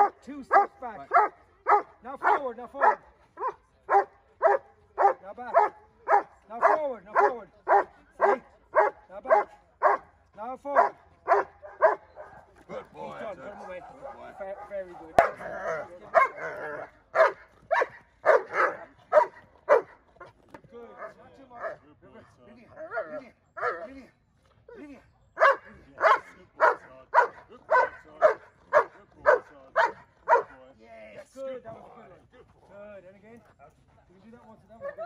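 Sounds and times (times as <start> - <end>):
dog barking: 0.0 - 10.1, 10.8 - 12.4, 13.5 - 20.0, 21.0 - 21.8, 22.8 - 23.9, 25.4 - 30.6, 34.8 - 35.0.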